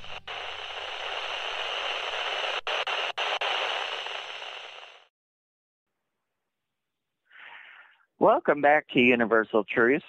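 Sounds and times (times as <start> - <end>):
radio static hiss: 0.0 - 5.1.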